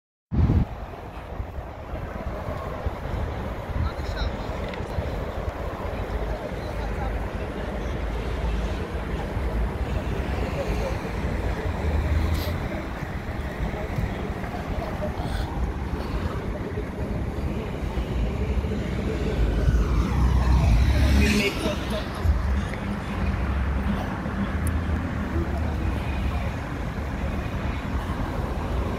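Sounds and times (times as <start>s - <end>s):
road traffic hum: 0.3s - 28.9s
wind buffeting microphone: 0.3s - 28.9s.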